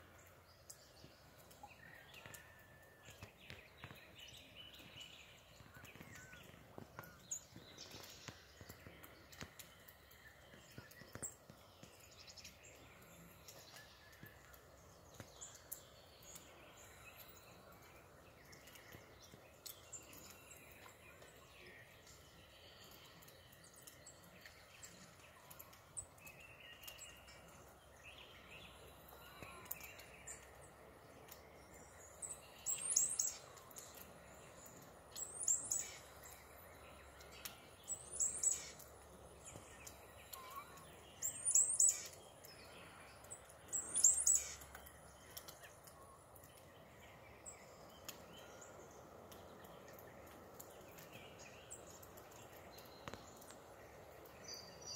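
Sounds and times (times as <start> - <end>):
faint bird chirps: 0.0 - 54.9
songbird singing high phrase: 35.1 - 46.1.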